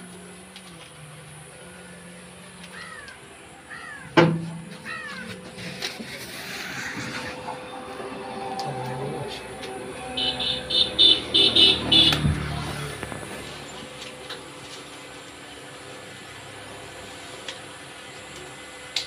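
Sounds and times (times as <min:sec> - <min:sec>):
vehicle horn short blasts: 0:10.0 - 0:12.6.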